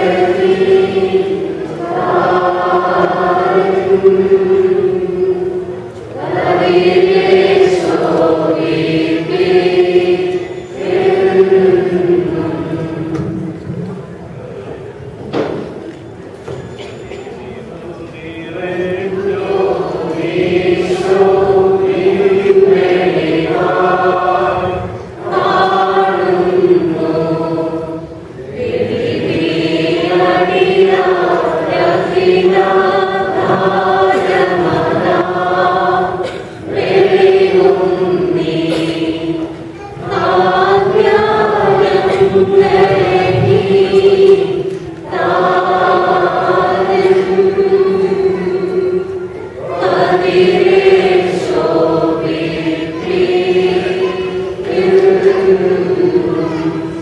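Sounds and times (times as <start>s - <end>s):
choir singing: 0.0s - 14.0s, 17.6s - 57.0s.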